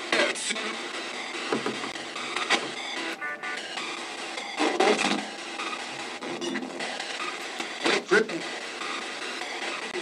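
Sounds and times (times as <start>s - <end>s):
radio static hiss: 2.1s - 10.0s.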